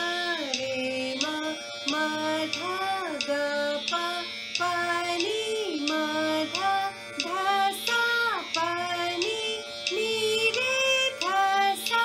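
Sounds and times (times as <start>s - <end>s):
woman singing scale exercise: 0.0s - 12.0s.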